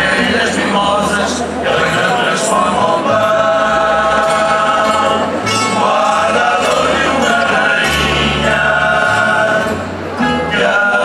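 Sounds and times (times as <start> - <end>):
double bass low notes: 0.0 - 11.0
male chorus singing: 0.0 - 11.0
plucked guitars and mandolins: 0.0 - 11.0.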